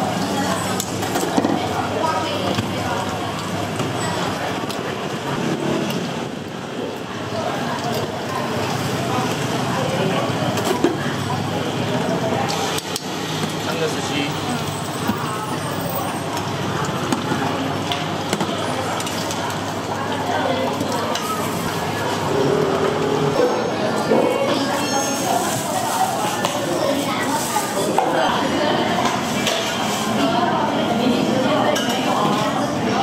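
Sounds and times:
indistinct voices: 0.0s - 33.0s
ladles bowls and pots clinking: 0.0s - 33.0s.

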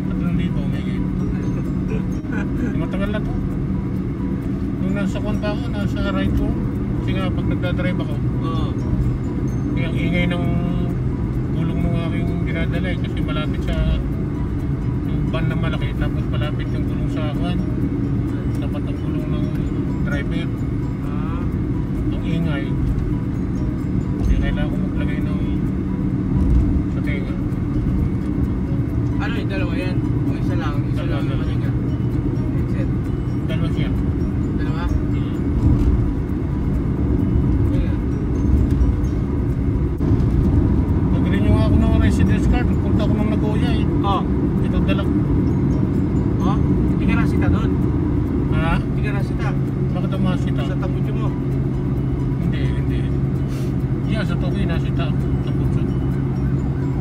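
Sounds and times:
car cabin road and engine rumble: 0.0s - 57.0s
voices: 26.9s - 35.6s.

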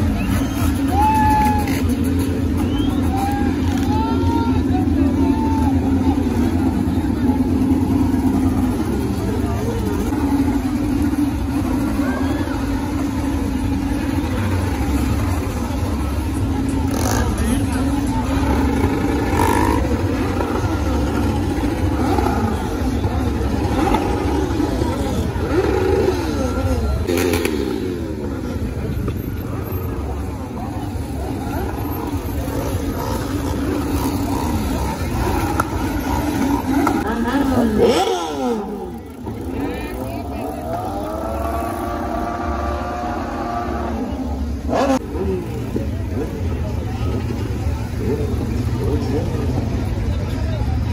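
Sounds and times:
crowd chatter: 0.0s - 50.9s
motorbike engines revving: 0.0s - 50.9s.

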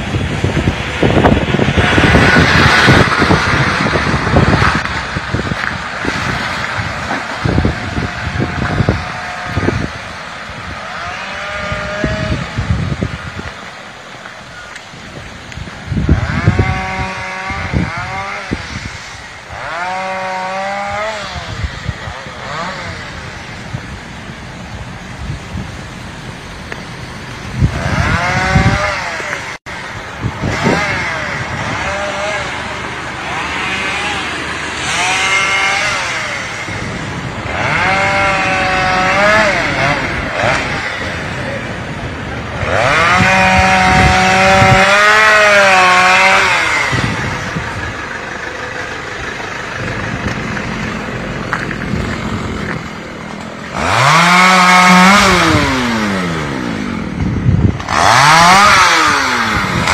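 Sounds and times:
chainsaw revving: 0.2s - 13.2s, 15.8s - 23.9s, 27.4s - 59.9s.

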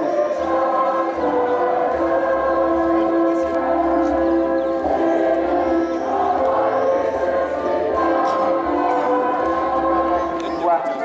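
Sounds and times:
choir singing a hymn: 0.0s - 10.8s.

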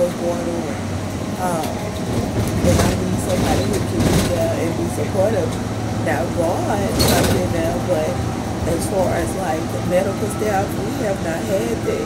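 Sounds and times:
vehicle cabin rumble: 0.0s - 12.0s.

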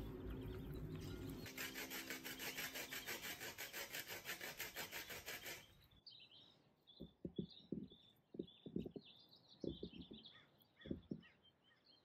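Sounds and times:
lemon zested on metal grater: 1.4s - 5.7s.

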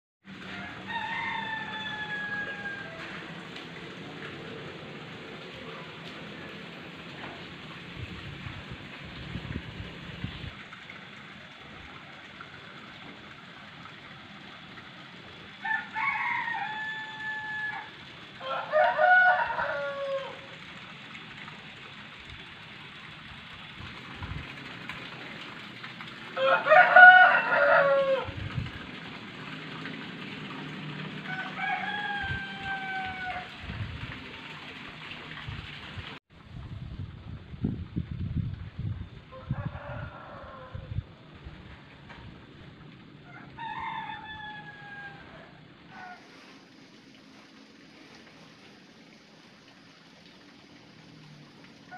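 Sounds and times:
rooster crowing: 0.4s - 3.4s, 15.6s - 20.6s, 26.4s - 28.4s, 31.2s - 33.6s, 39.3s - 41.0s, 43.2s - 46.3s.

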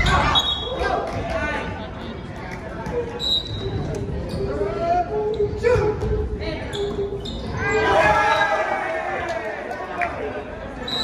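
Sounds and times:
players calling and shouting: 2.9s - 11.0s.

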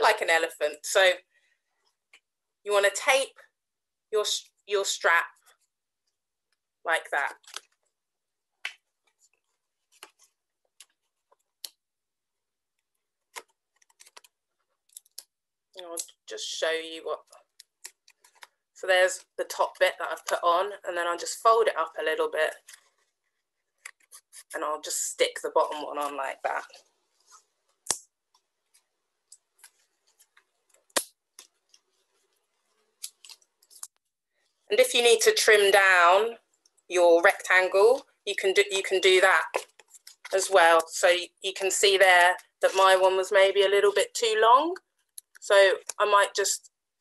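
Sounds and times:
paper and tape crackling: 13.2s - 15.2s, 17.2s - 18.6s, 22.5s - 24.6s.

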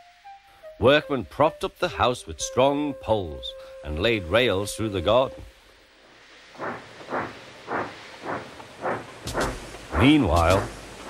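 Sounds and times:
steam locomotive chuffing: 6.6s - 11.0s.

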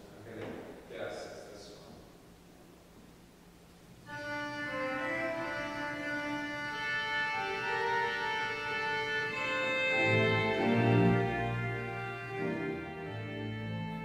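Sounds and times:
church organ playing chords: 4.0s - 14.0s.

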